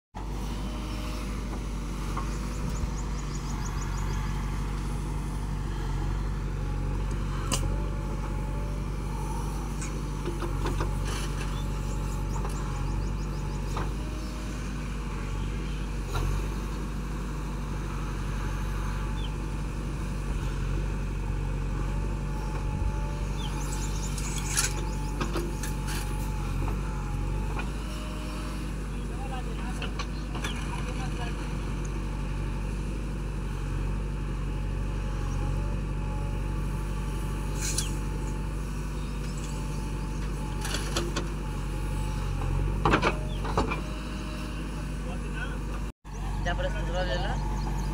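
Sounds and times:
diesel engine running under load: 0.1s - 47.9s.

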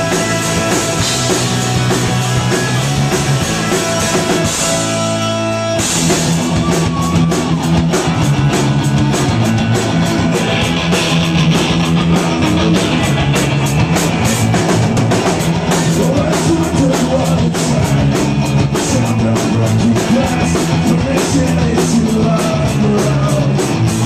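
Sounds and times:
live rock band playing: 0.0s - 24.0s.

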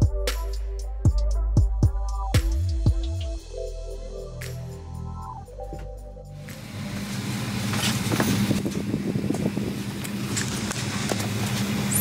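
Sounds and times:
airliner cabin hum: 4.7s - 11.9s
passengers knocking and rustling: 7.7s - 11.7s.

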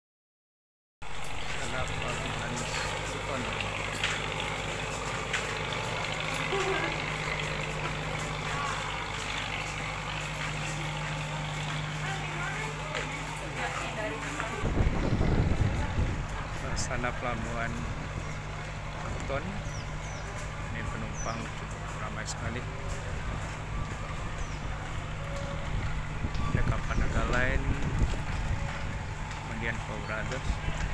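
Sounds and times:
large engine idling: 1.0s - 30.9s
people chattering: 5.6s - 17.2s
wind on microphone: 14.6s - 16.9s, 25.5s - 29.5s.

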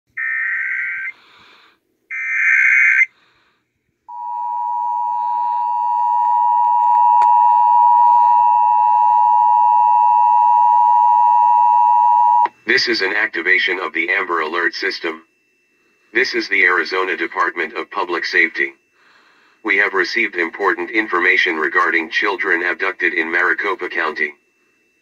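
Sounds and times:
buzzy electronic data bursts: 2.1s - 3.3s, 12.6s - 25.0s
long steady electronic alert tone: 2.1s - 25.0s.

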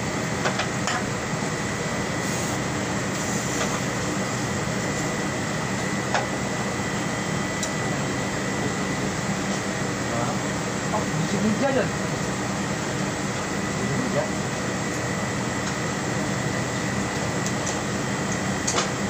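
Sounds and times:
workshop machinery drone: 0.0s - 19.0s.

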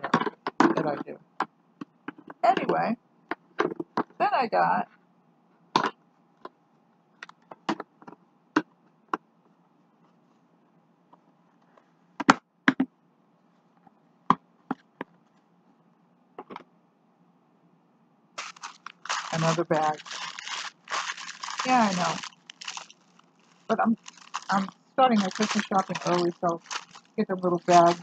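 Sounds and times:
mail and plastic packaging handled: 18.4s - 28.0s.

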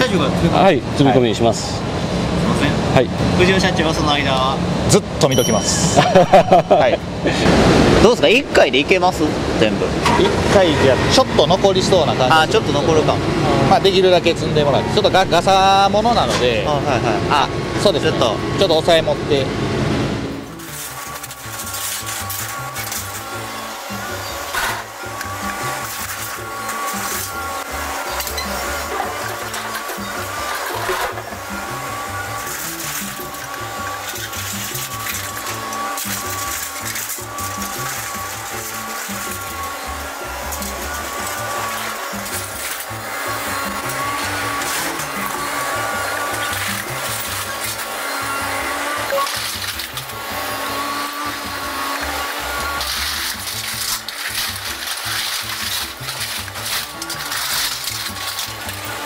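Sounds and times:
excavator engine and hydraulics: 0.0s - 59.0s
background music: 10.1s - 59.0s.

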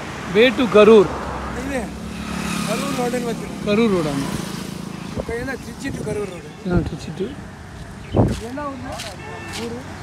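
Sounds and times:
motorcycle engine passing: 1.6s - 6.4s.

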